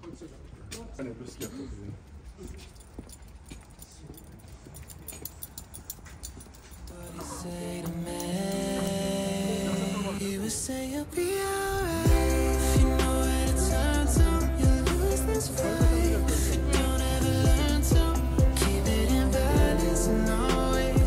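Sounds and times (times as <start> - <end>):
music with long held tones: 11.5 - 21.0.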